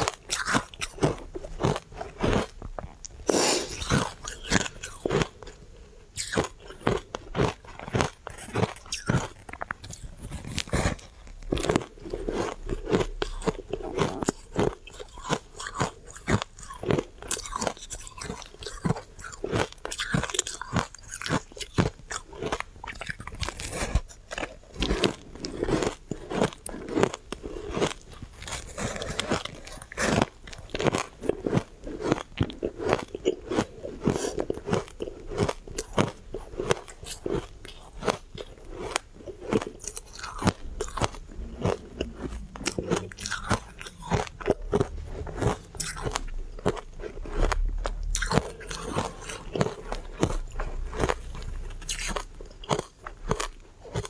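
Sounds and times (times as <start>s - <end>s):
ice crunching while chewed: 0.0s - 54.0s.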